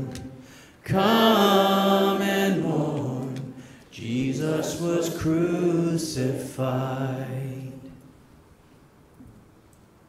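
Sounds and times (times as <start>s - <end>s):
worship singers singing: 0.0s - 8.2s.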